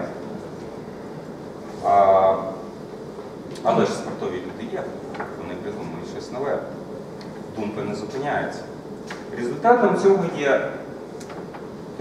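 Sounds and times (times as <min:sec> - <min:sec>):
steady low hiss: 0:00.0 - 0:12.0.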